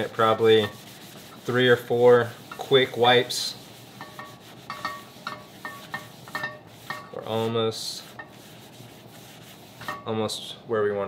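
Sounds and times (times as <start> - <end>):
paper towel wiping skillet: 0.0 - 10.4
metallic ring from pan: 4.0 - 7.1.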